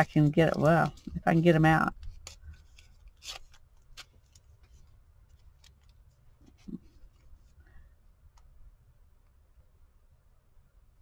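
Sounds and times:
paper wrapper crinkling: 0.0 - 7.5.

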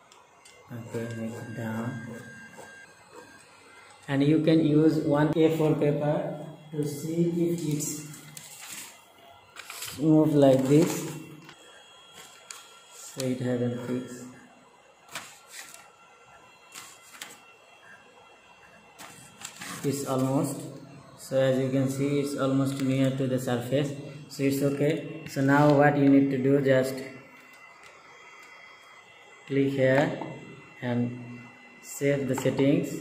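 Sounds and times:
person speaking: 0.7 - 2.6, 9.8 - 11.5, 19.6 - 27.2
paper rustling: 8.2 - 9.0, 9.6 - 13.2, 15.1 - 15.9, 16.7 - 17.4.

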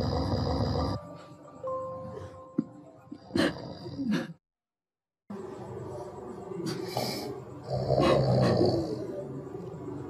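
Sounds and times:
person snoring: 0.0 - 1.0, 3.2 - 4.4, 6.9 - 9.2.

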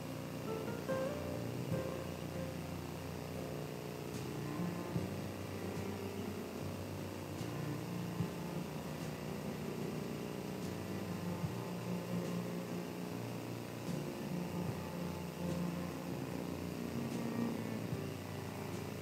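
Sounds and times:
low rumble and hum: 0.0 - 19.0.

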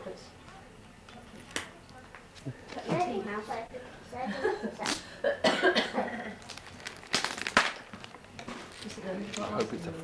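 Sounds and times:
person coughing: 5.2 - 6.4.

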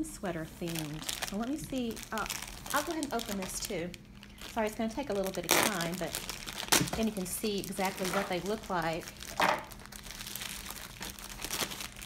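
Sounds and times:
plastic packaging crinkling: 0.3 - 12.0.

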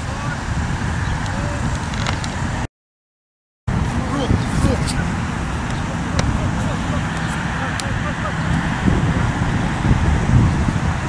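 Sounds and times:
wind rumble on microphone: 0.0 - 2.7, 3.7 - 11.0
distant voices calling: 3.7 - 11.0.

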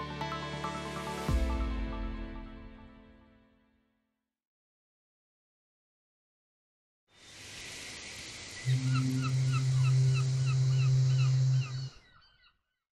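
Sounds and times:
gulls crying: 8.6 - 12.4.

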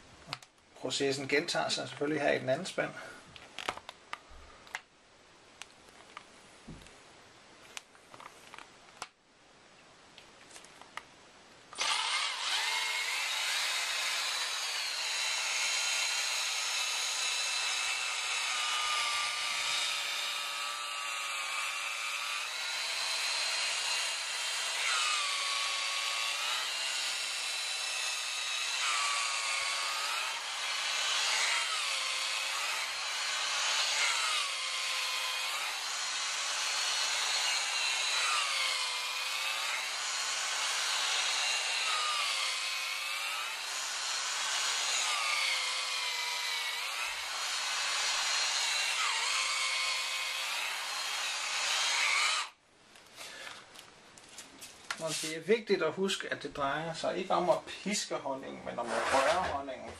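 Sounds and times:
electric drill motor stirring: 11.8 - 52.6.

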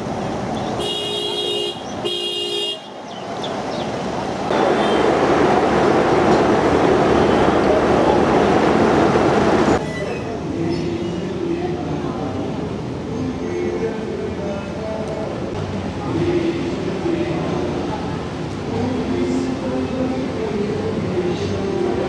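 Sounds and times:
traffic noise: 0.0 - 22.0
vehicle horn honks: 0.8 - 2.9, 4.7 - 5.1.

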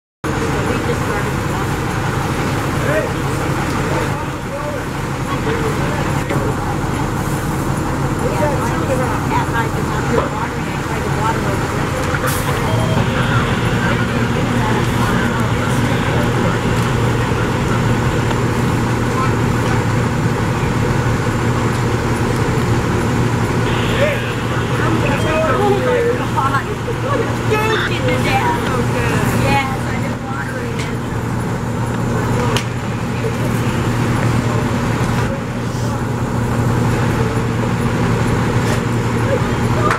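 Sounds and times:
fire engine engine droning: 0.2 - 39.9
indistinct voices calling: 0.3 - 38.4.

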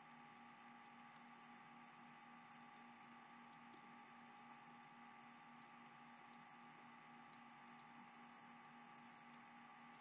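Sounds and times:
faint steady hum and hiss: 0.0 - 10.0.

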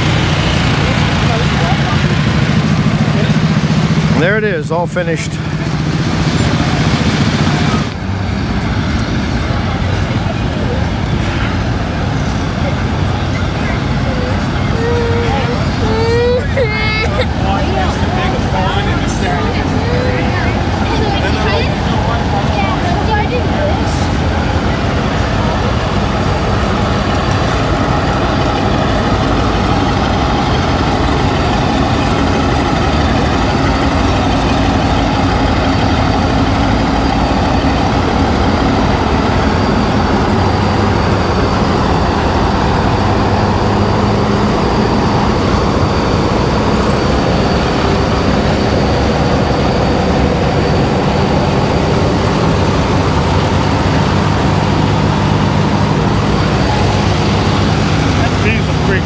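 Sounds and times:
heavy engine idling: 0.0 - 59.0.

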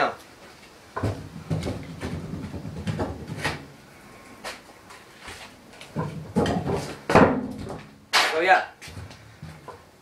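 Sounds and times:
scooter knocking on floor: 1.0 - 3.6.

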